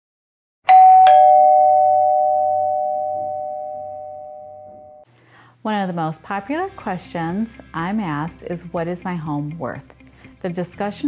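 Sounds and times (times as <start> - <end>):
two-tone doorbell chime: 0.7 - 5.0.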